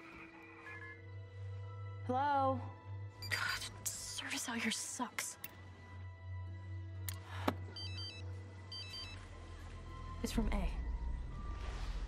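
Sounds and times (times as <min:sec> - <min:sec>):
phone text message chime: 0:07.8 - 0:09.2.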